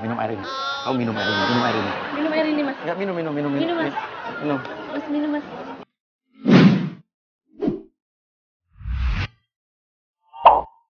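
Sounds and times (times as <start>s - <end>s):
short swish: 6.4s - 7.0s.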